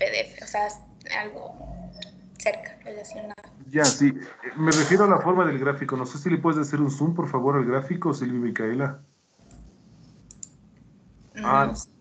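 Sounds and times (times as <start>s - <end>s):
faint computer mouse clicks: 9.5s - 10.6s.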